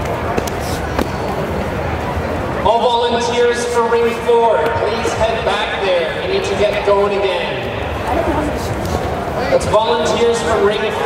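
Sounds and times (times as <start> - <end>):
voices echoing in sports hall: 0.0 - 11.0.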